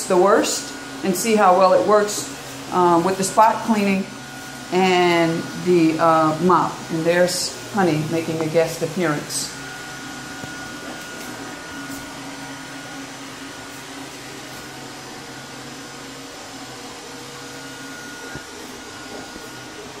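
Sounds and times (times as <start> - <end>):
robot vacuum motor hum: 0.0 - 20.0.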